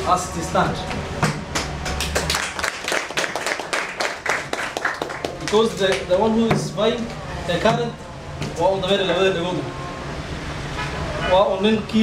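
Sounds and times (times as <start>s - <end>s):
audience clapping: 1.3s - 6.1s.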